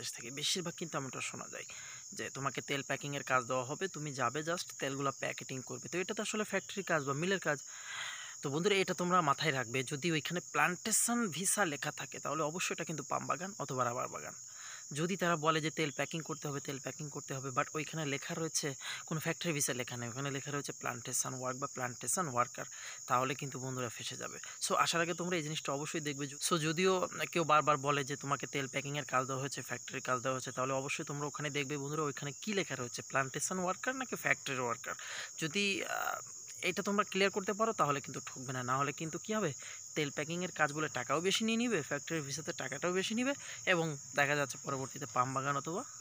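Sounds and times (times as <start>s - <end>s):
insects droning: 0.0s - 46.0s
man talking: 0.0s - 46.0s.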